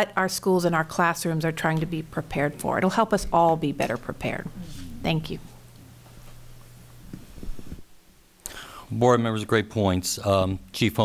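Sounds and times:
faint low murmurs: 3.2 - 7.8
man speaking: 4.6 - 5.2, 8.8 - 11.0
breath: 8.4 - 8.9.

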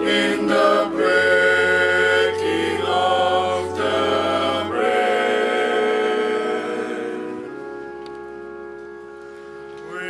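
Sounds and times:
choir holding a chord: 0.0 - 8.7, 9.6 - 10.0.

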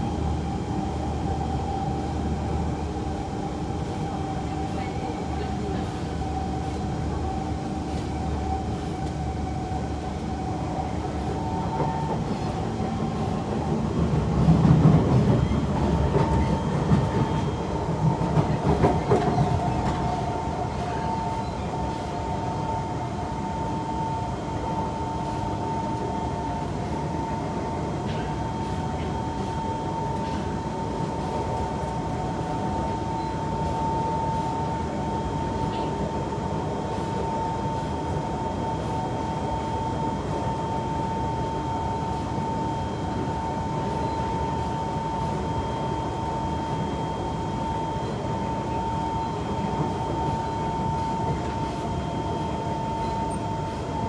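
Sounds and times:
train running noise with whine: 0.0 - 54.0.

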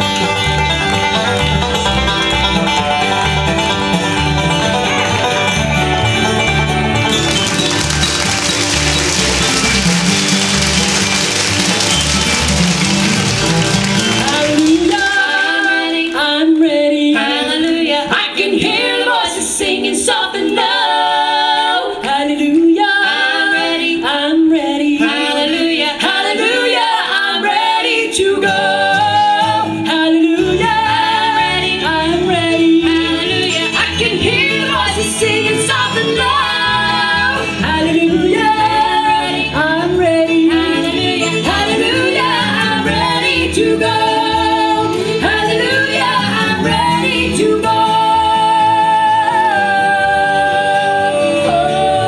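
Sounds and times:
low band instruments: 0.0 - 15.5
upright bass: 0.0 - 15.9
banjo picking: 0.0 - 16.3, 26.4 - 49.6
mandolin: 0.0 - 20.2, 25.0 - 52.0
acoustic guitar: 0.0 - 52.0
women singing in harmony: 14.2 - 52.0.

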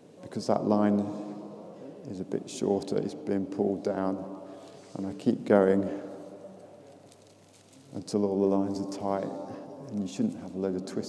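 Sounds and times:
voice echoing in a hall: 0.0 - 11.0.

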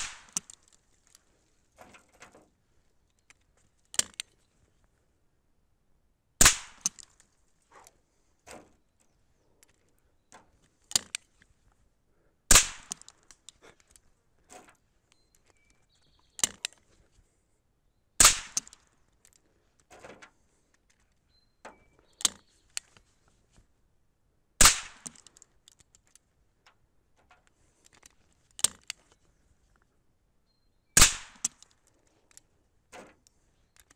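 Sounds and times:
rifle shots: 0.0 - 0.5, 6.4 - 6.9, 12.5 - 13.1, 18.2 - 18.8, 24.6 - 25.2, 31.0 - 31.6
rifle action clicking: 12.5 - 14.0.

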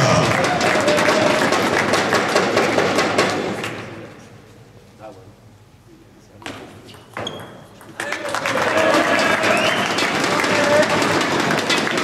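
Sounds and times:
spectators applauding and cheering: 0.0 - 3.2, 8.0 - 12.0.

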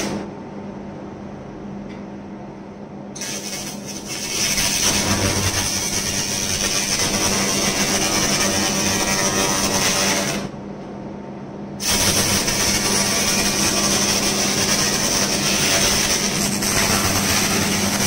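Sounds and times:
low machine hum: 0.0 - 18.0
laser cleaning hiss: 3.2 - 10.3, 11.8 - 18.0.

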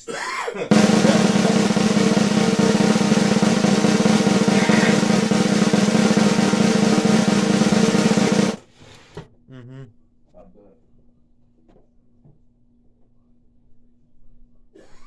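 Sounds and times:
steady low tone: 0.7 - 8.6
snare drum roll: 0.7 - 8.7.

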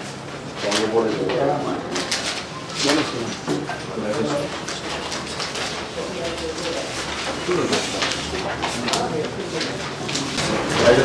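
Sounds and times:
people talking: 0.6 - 4.6, 5.9 - 11.0.

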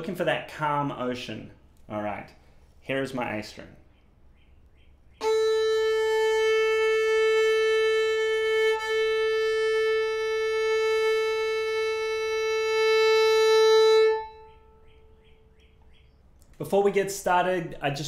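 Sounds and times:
violin bowed long note: 5.2 - 14.8.

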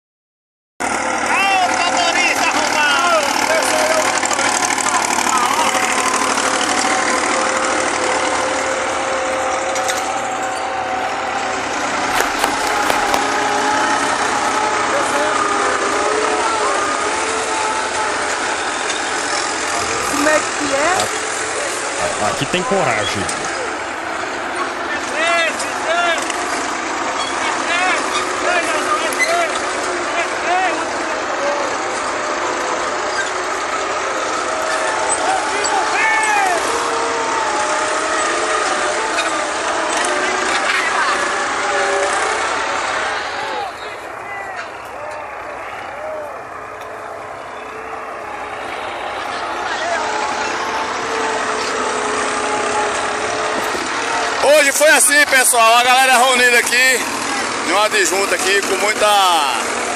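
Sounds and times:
tractor diesel engines under load: 0.8 - 59.9
people's voices: 1.2 - 26.6, 27.2 - 59.9.

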